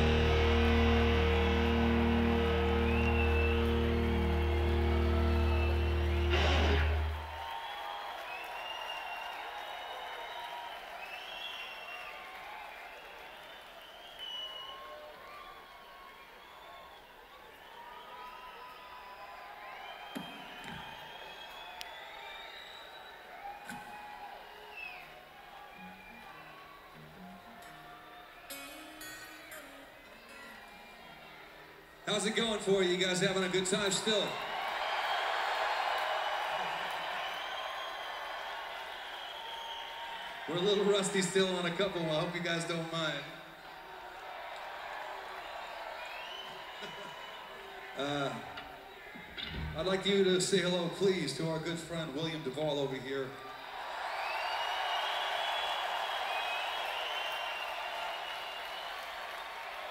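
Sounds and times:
rock band final chord: 0.0 - 7.3
crowd cheering and whistling: 0.0 - 59.9.

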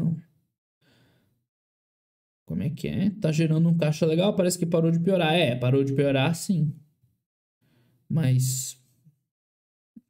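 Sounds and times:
man speaking: 0.0 - 0.2, 2.5 - 6.8, 8.1 - 8.9
faint breath: 0.8 - 1.4, 7.6 - 8.1.

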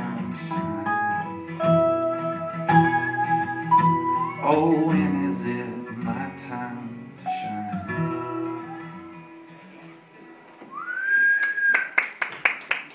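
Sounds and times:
sliding steel guitar notes: 0.0 - 10.0
acoustic guitar: 0.0 - 11.7
person whistling: 2.8 - 4.5, 7.3 - 9.0, 10.7 - 12.0
audience applause: 11.4 - 12.9.

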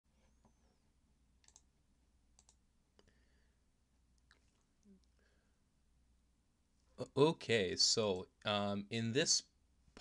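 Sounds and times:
faint clicks: 1.4 - 1.7, 2.4 - 3.1.

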